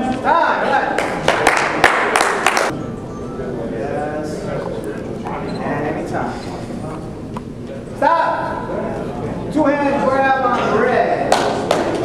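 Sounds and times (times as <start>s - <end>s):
indistinct talking in a hall: 0.0s - 12.0s.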